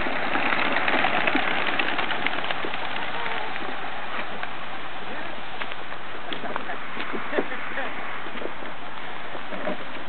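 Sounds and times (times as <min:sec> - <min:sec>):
pigeon wingbeats clattering: 0:00.0 - 0:04.6.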